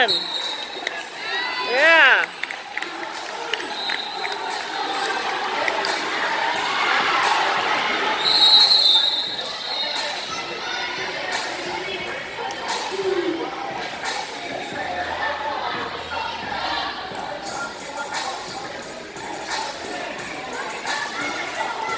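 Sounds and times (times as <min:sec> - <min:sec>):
short high whistle: 0:00.0 - 0:00.8
crowd chatter in echoing hall: 0:00.0 - 0:21.9.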